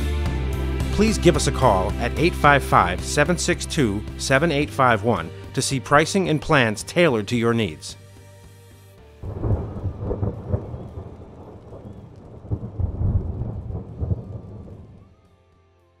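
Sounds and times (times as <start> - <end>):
low crackly rumble: 9.2 - 15.2.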